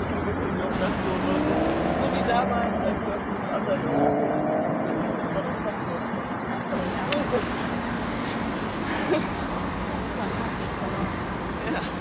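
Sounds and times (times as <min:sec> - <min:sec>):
distant road traffic hum: 0:00.0 - 0:12.0.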